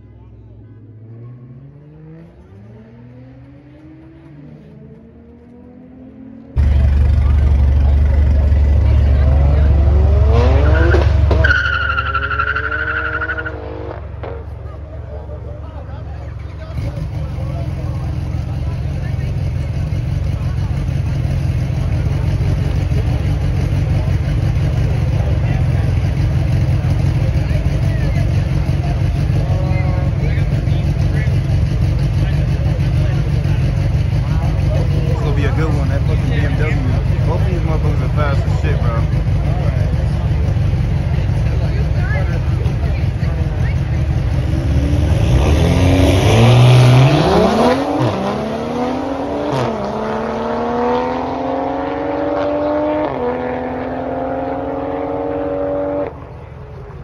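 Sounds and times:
car engines rumbling and revving: 0.0 - 57.0.

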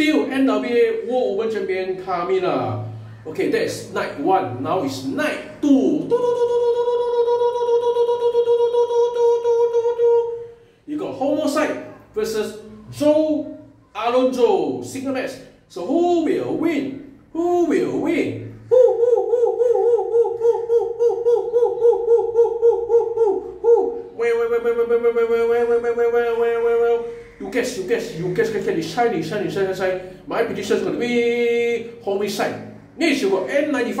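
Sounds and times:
man chanting owl-like hoots: 0.0 - 34.0
man singing falsetto: 6.0 - 10.6, 18.4 - 27.3.

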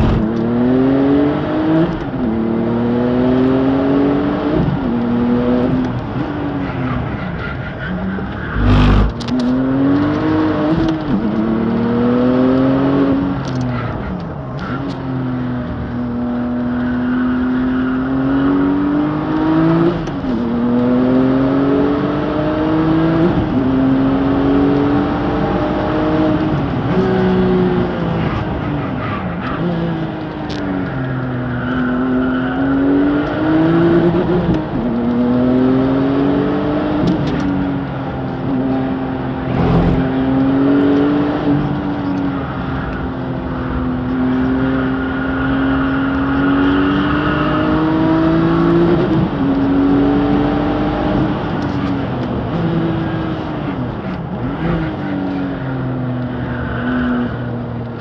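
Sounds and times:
racing car engine revving: 8.1 - 13.2, 31.6 - 42.8.

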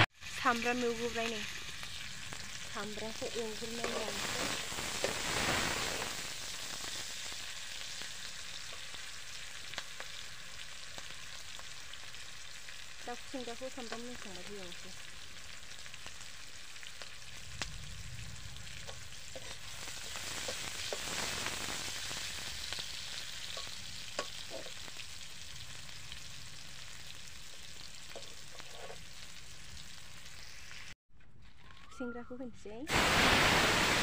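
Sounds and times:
onions sizzling in hot oil: 0.0 - 31.0, 32.9 - 34.0
metal ladle scraping pan: 28.1 - 29.0.

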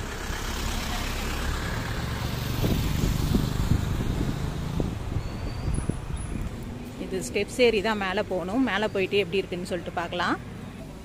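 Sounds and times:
vehicle passing rumble: 0.0 - 11.0.

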